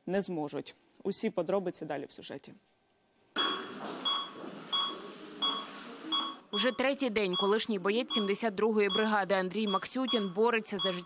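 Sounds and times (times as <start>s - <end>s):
patient monitor beeping: 3.4s - 11.0s.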